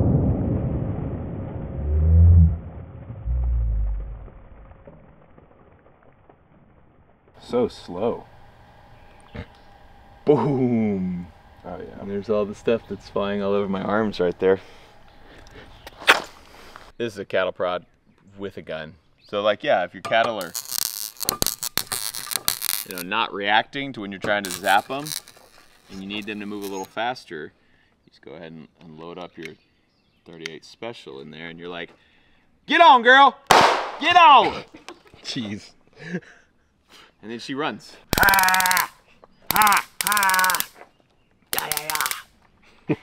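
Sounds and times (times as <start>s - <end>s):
sharp clicks: 20.4s - 23.1s, 24.4s - 26.9s, 38.1s - 40.8s, 41.5s - 42.3s
man laughing hard: 39.5s - 40.6s, 42.7s - 43.0s.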